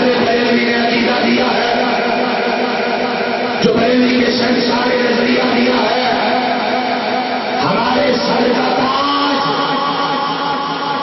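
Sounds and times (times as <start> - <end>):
man chanting a long note: 0.0 - 11.0.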